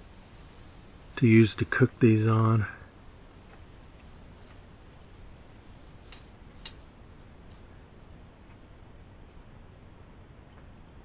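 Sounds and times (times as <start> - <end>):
sharp clicks: 6.0 - 6.9.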